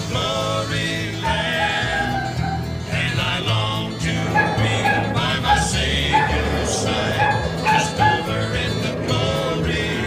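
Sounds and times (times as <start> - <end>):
background music: 0.0 - 10.0
dog barking: 1.2 - 2.8, 4.2 - 8.6.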